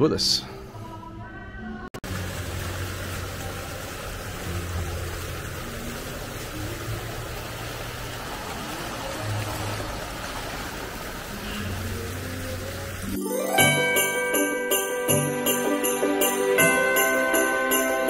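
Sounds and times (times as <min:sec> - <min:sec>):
faint background music: 0:00.0 - 0:10.5
water pouring and splashing: 0:02.0 - 0:14.2.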